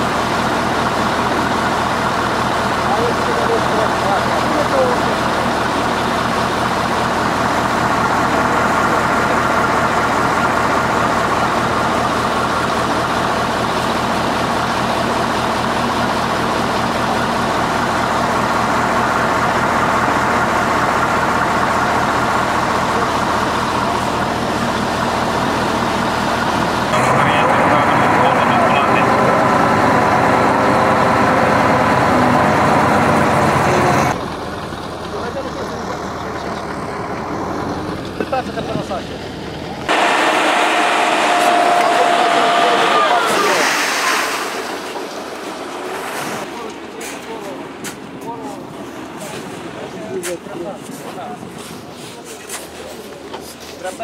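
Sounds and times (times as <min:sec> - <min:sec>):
truck engine idling: 0:00.0 - 0:54.0
crowd chatter: 0:02.7 - 0:15.2, 0:20.8 - 0:29.6, 0:37.8 - 0:54.0.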